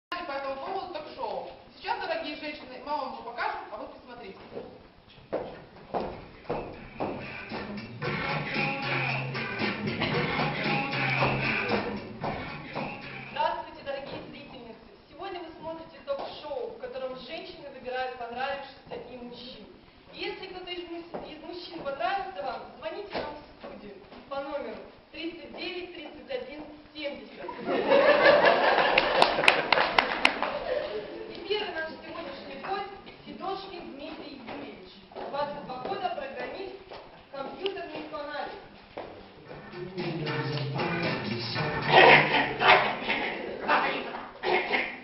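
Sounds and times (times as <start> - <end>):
footsteps on wooden stage: 4.3 - 8.2, 9.9 - 13.2, 13.9 - 14.7, 21.1 - 22.1, 33.9 - 41.1
audience applauding: 28.7 - 30.7.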